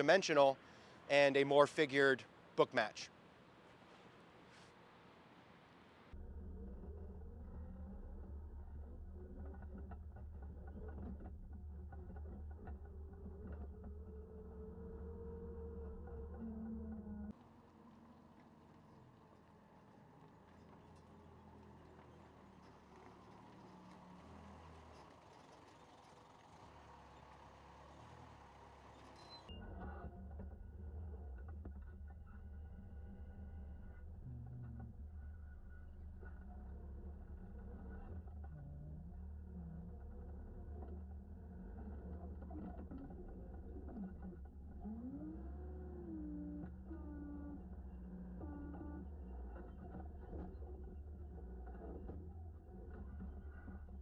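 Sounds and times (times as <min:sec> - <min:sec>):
forklift engine droning: 0:00.0 - 0:05.0, 0:06.1 - 0:54.0
engine whines: 0:06.1 - 0:54.0.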